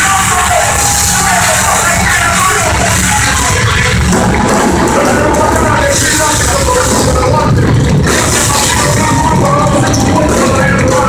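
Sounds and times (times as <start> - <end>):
heavy metal band playing live: 0.0 - 11.0.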